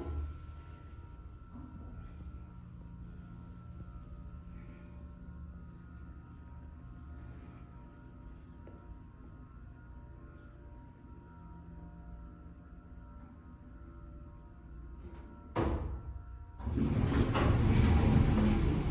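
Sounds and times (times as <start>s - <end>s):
elevator hum: 0.0s - 18.9s
elevator clunk: 16.6s - 18.9s
elevator doors sliding open: 16.6s - 18.9s.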